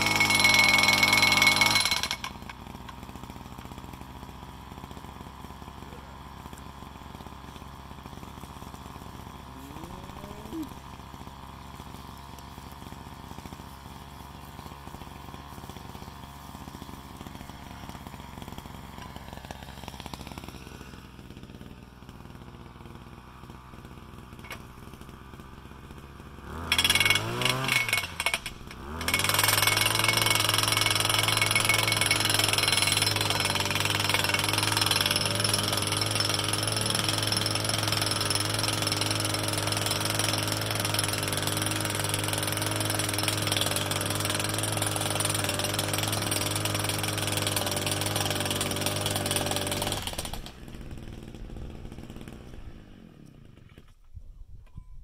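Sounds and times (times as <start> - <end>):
post driver engine hammering: 0.0 - 52.7.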